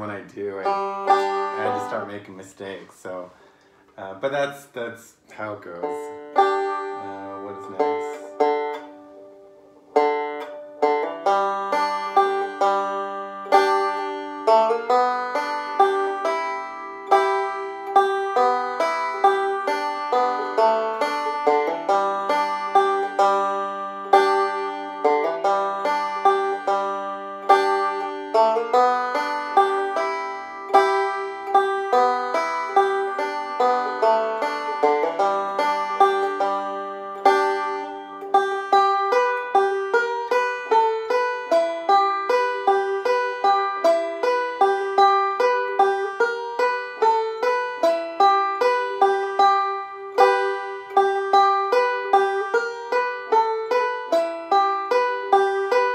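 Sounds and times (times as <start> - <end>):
banjo picking: 0.0 - 55.9.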